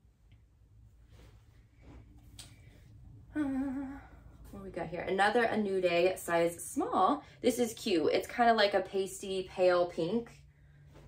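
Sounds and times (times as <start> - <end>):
low room hum: 0.0 - 11.0
clothing fabric rustling: 0.7 - 3.1.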